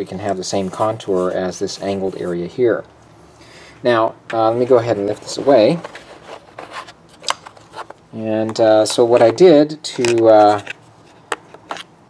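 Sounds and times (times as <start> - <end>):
plastic cover scraping: 4.6 - 8.0.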